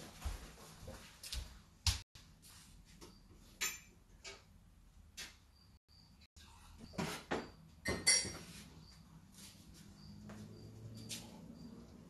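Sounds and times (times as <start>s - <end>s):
cup clinking with short ring: 7.8s - 8.4s.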